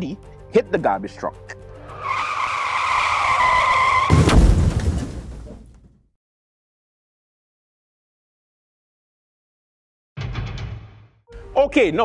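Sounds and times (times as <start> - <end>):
car tyres screeching: 1.7 - 4.3
loud crash rumbling: 4.0 - 5.9.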